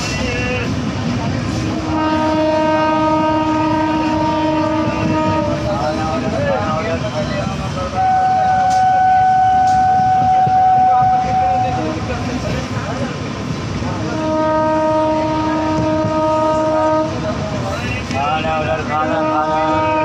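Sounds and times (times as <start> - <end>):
train wheels rumbling on rails: 0.0 - 20.0
locomotive horn blasts: 1.6 - 6.0, 8.0 - 12.1, 14.0 - 17.4, 18.8 - 20.0.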